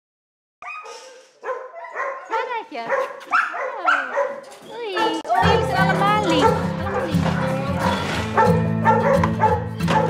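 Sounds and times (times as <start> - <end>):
dog barking: 0.6 - 5.6, 6.3 - 10.0.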